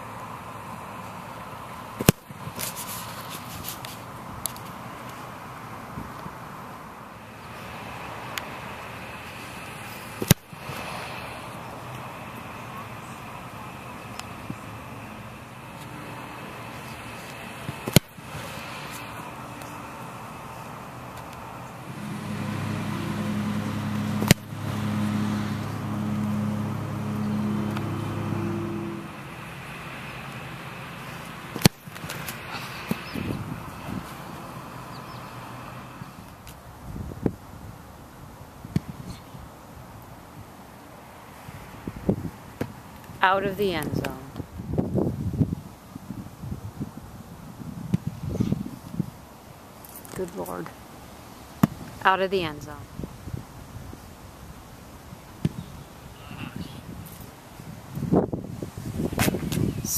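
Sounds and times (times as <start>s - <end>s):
vehicle engine hum: 0.0s - 59.9s
foot kicking football: 2.0s - 2.7s, 17.6s - 18.3s, 31.5s - 34.2s, 59.1s - 59.7s.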